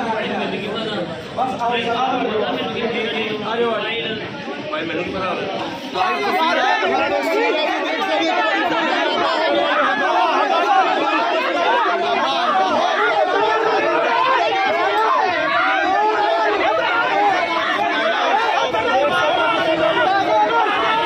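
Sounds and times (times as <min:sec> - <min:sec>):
men arguing: 0:04.8 - 0:21.0.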